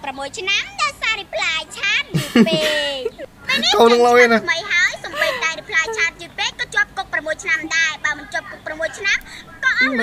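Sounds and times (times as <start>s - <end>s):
woman talking: 0.0s - 10.0s.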